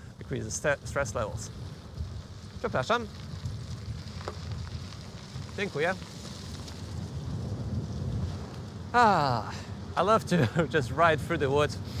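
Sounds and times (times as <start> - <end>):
wind on microphone: 1.4 - 9.0
tyre rolling on gravel: 2.0 - 8.5.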